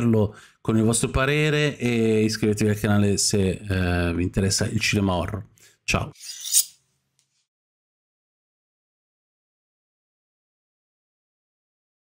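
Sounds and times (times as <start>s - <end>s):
short rasping rub: 6.2s - 6.8s.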